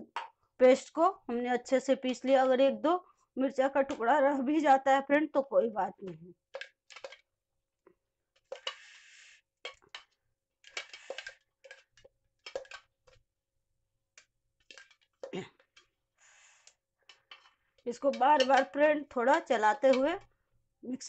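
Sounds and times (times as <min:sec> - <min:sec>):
metal spoon scraping in metal jar: 0:08.4 - 0:09.0, 0:10.7 - 0:12.8, 0:14.7 - 0:15.0, 0:17.1 - 0:20.1.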